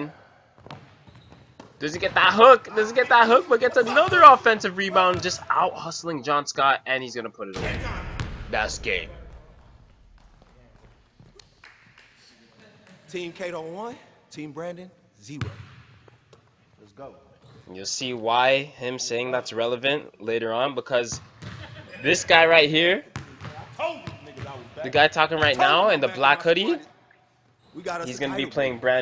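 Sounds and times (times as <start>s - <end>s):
basketball bouncing on hardwood: 0.6s - 1.8s, 23.1s - 24.2s
person speaking: 1.9s - 6.3s, 25.3s - 26.9s.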